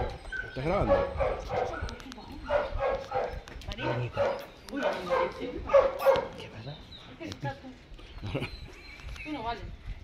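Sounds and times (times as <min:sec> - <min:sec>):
dogs barking: 0:00.0 - 0:06.5.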